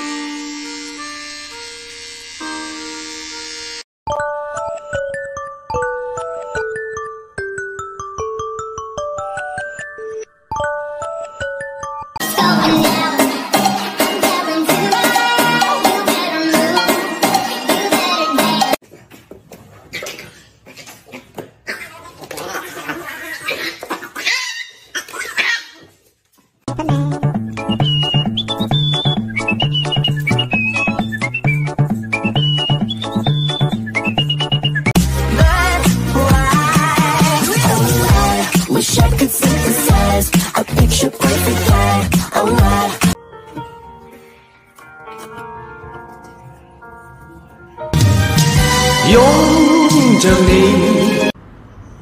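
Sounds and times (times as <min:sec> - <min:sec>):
music with sustained reedy notes: 0:42.6 - 0:51.3.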